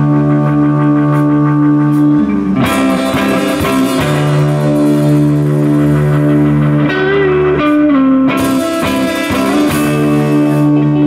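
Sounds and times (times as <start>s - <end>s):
electric guitar sustained chord: 0.0s - 11.0s.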